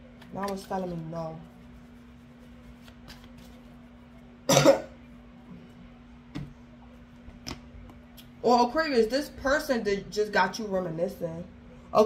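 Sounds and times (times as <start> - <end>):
faint steady hum: 0.0 - 12.0
person coughing: 4.5 - 5.0.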